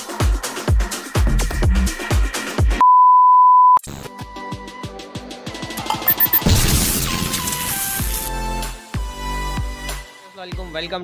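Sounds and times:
loud test-tone beep: 2.8s - 3.8s, 6.1s - 6.5s
electronic music with drum hits: 5.7s - 7.3s.

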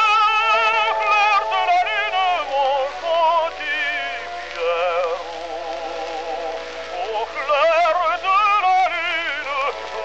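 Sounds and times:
operatic tenor singing: 0.0s - 10.0s.

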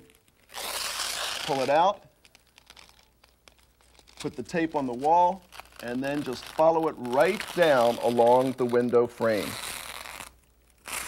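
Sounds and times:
masking paper crinkling: 0.0s - 11.0s.

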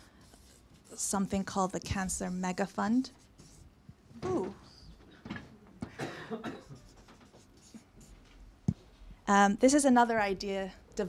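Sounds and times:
faint scratching and rustling: 6.6s - 9.1s.

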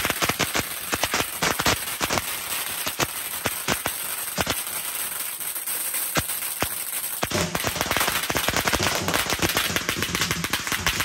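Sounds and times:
firecracker bangs: 0.0s - 11.0s
string of firecrackers going off: 0.0s - 11.0s.

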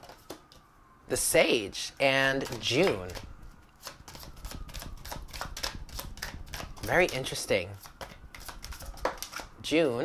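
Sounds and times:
cards being shuffled: 2.4s - 9.5s.

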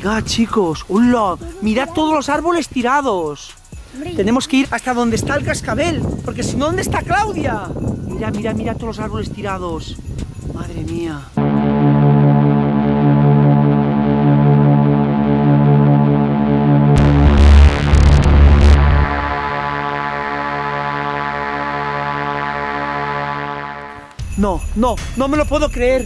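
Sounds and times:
synthesizer drone: 11.4s - 24.2s
static glitch noise with rumble: 16.9s - 19.6s.

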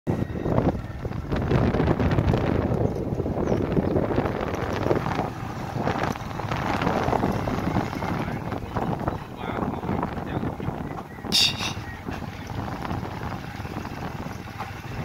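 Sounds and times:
wind buffeting microphone: 0.1s - 15.0s.

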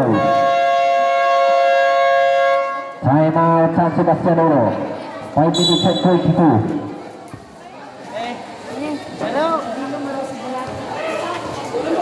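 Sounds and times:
basketball buzzer horn: 0.0s - 3.0s.

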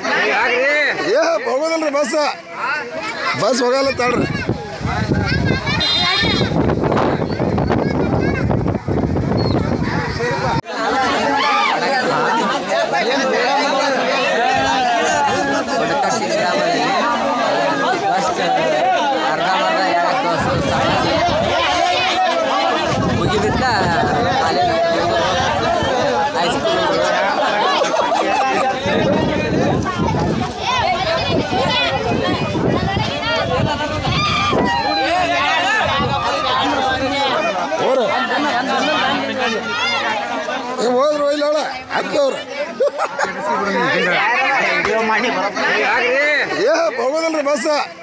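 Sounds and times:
crowd babble of voices: 0.0s - 48.0s.

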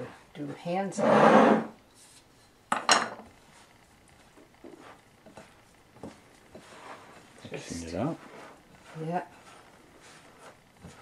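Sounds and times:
dough being worked: 0.0s - 2.6s, 3.2s - 11.0s.

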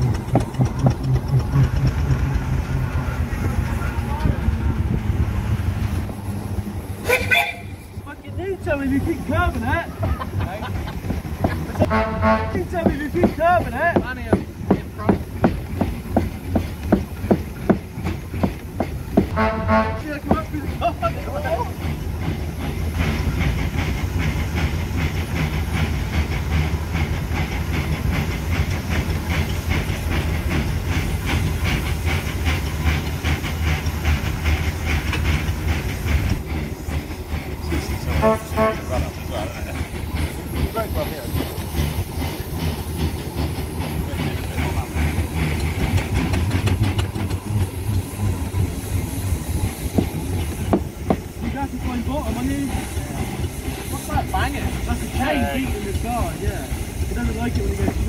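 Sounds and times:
steam engine exhaust beat: 0.0s - 58.0s.

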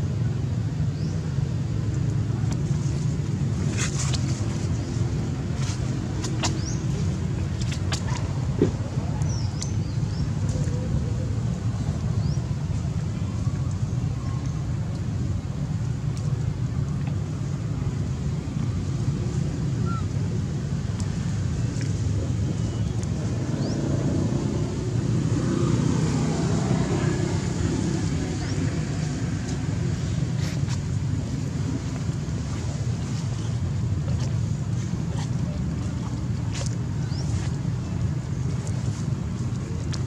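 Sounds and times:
low outdoor rumble: 0.0s - 40.0s.

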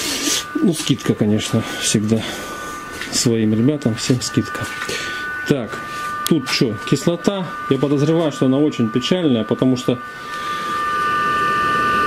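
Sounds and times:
car engine running with high whine: 0.0s - 12.0s.

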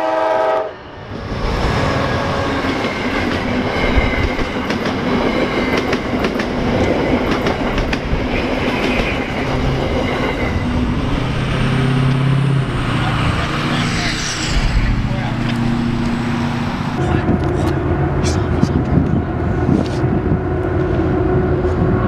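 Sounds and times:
diesel locomotive: 0.0s - 22.0s
passenger train passing at speed: 0.0s - 22.0s.

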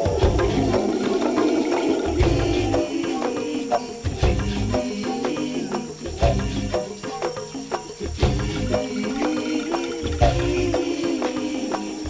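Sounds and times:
upbeat instrumental music: 0.0s - 12.0s.

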